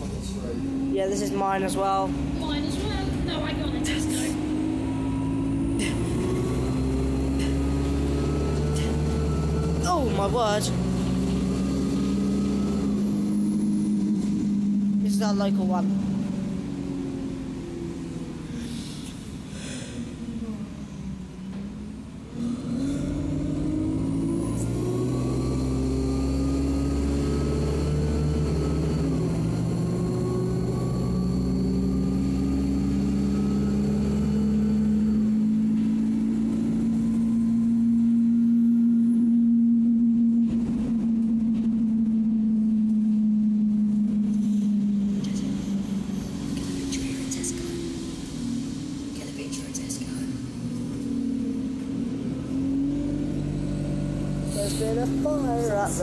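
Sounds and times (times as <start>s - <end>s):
bus diesel engine: 0.0s - 56.0s
faint high whine: 24.3s - 56.0s.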